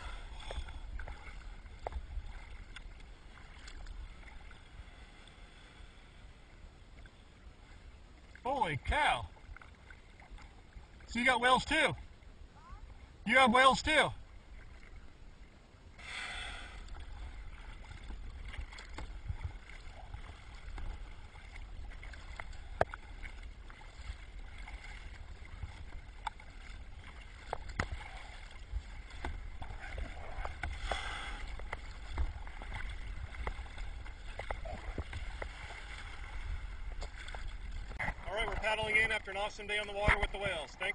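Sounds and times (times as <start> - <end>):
wind and water rumble: 0.0 - 40.9
small clicks and drips: 0.4 - 4.6, 16.8 - 36.1, 36.9 - 38.1.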